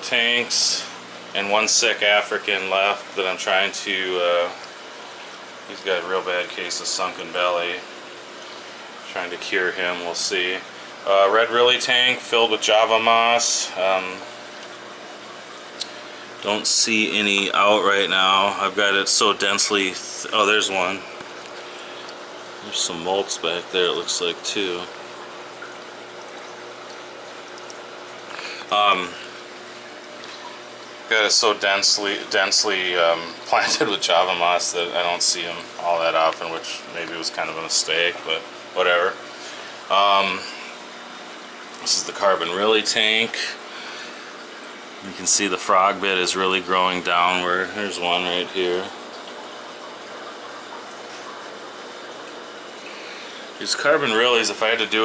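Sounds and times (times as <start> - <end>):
aquarium water bubbling: 0.0 - 55.0
faint steady hum: 0.0 - 55.0.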